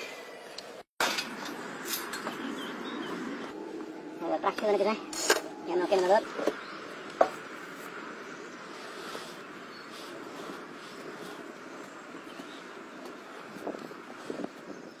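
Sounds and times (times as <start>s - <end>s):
steady background noise: 0.2s - 15.0s.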